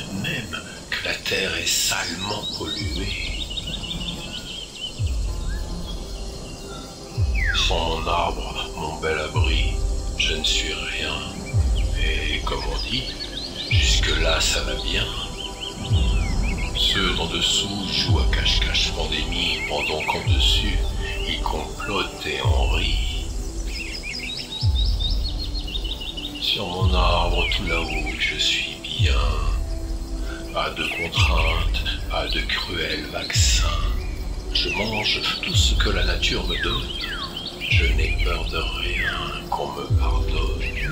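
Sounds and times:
background music: 0.0s - 40.9s
birds chirping: 0.0s - 40.9s.

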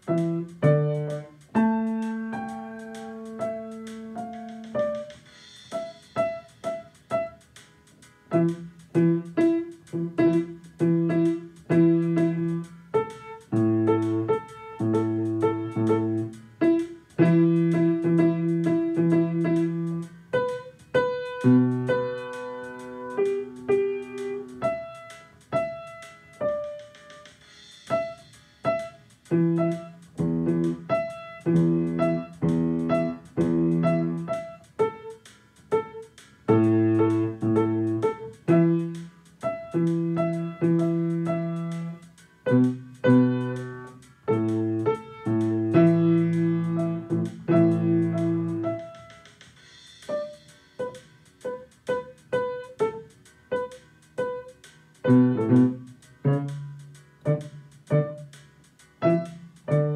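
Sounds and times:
blues piano playing: 0.0s - 59.9s.

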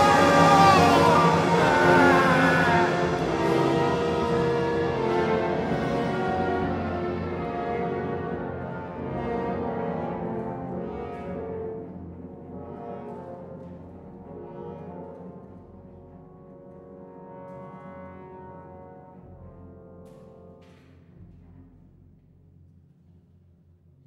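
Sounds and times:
orchestra playing brass chords: 0.0s - 15.6s.

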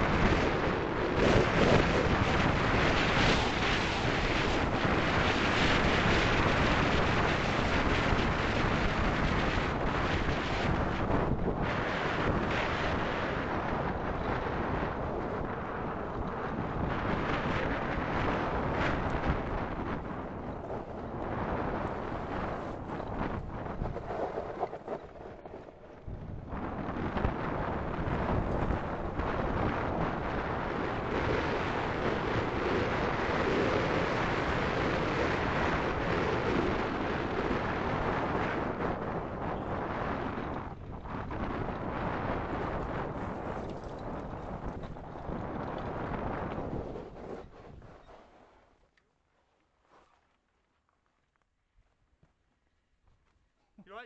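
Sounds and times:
wind buffeting microphone: 0.0s - 48.8s.

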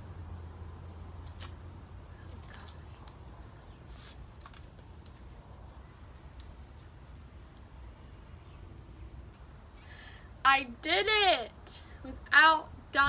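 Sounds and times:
low steady rumble: 0.0s - 3.9s.

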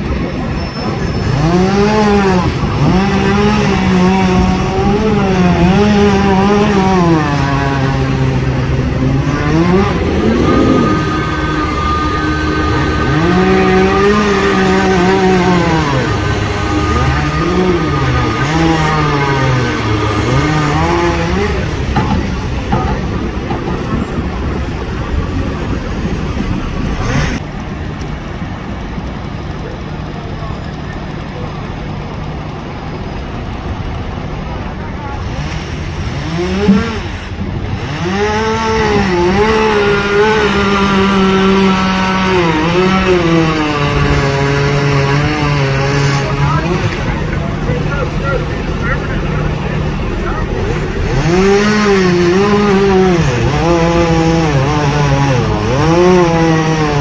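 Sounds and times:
vehicle engines passing: 0.0s - 57.0s.

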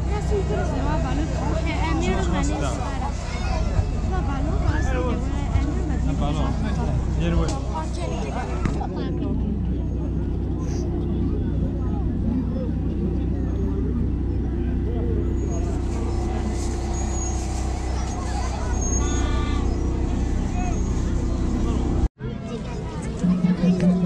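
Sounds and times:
steady low hum: 0.0s - 22.1s
people talking outdoors: 0.0s - 24.0s.

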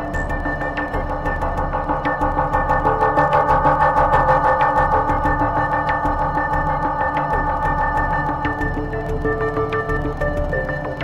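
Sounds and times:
droning synthesizer chord: 0.0s - 11.0s.

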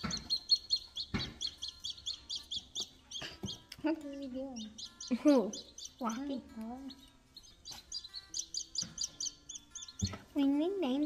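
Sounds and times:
baby chicks peeping: 0.0s - 11.0s.

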